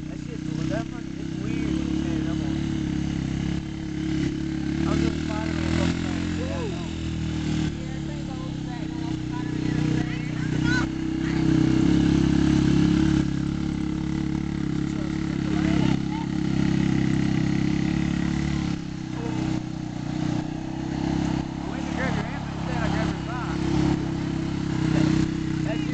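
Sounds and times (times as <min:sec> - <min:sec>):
atv engine running: 0:00.0 - 0:25.9.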